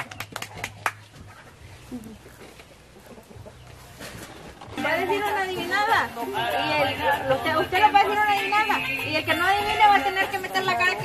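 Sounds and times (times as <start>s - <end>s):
voices: 4.8s - 11.0s.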